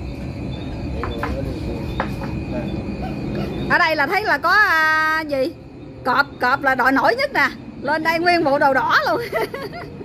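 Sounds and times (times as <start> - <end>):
low background rumble: 2.5 - 10.0.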